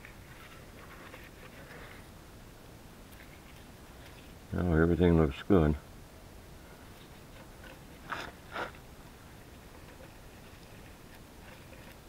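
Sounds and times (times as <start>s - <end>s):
gloved hands scraping: 0.0s - 2.1s, 6.9s - 8.8s.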